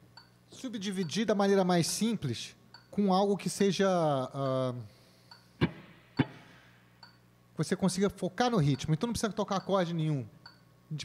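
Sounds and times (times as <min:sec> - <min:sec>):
muted electric guitar strums: 0:05.6 - 0:06.4.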